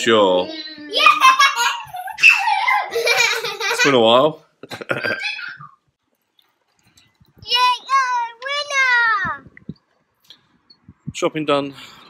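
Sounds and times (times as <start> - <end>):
child giggling: 0.9 - 3.9, 4.7 - 5.8.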